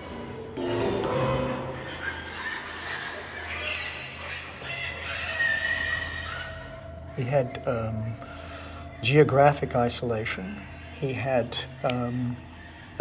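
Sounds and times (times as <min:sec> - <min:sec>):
animal calls: 0:00.0 - 0:07.4
low droning music: 0:00.0 - 0:13.0.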